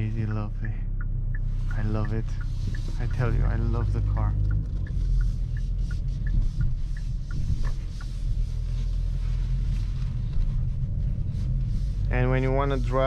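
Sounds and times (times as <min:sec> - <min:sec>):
car engine and road rumble: 0:00.0 - 0:13.0
turn signal ticking: 0:00.0 - 0:13.0.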